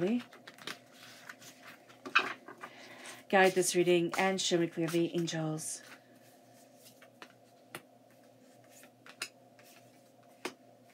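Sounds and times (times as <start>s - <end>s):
cards being shuffled: 0.0s - 2.1s, 6.7s - 10.9s.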